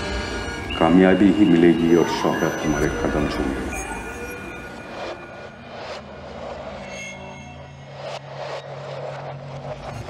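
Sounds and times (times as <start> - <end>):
low suspense drone: 0.0 - 10.0.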